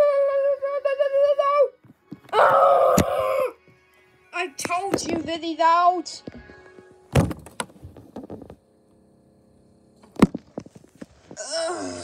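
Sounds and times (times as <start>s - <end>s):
heavy thunks: 7.1s - 8.5s.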